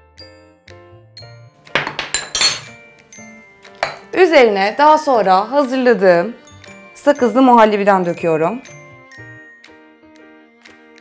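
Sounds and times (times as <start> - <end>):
soft background music: 0.0 - 11.0
metal spoon clinking on glass mug: 1.2 - 2.8, 3.8 - 4.1.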